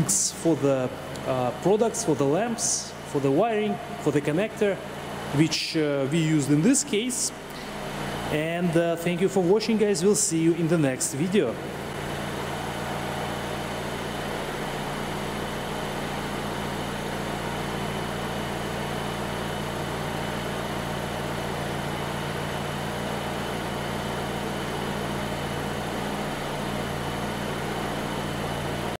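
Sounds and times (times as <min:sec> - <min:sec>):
car engine idling: 0:11.4 - 0:29.0.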